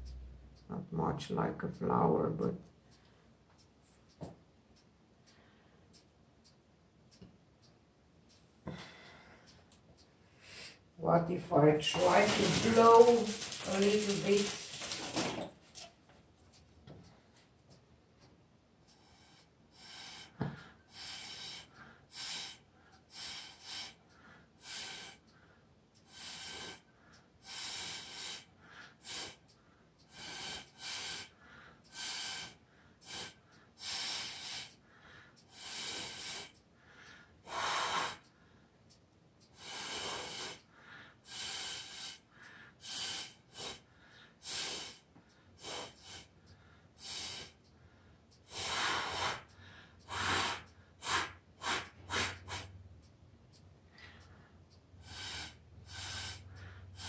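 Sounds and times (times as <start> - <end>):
person blowing puffs of air: 50.1 - 52.8.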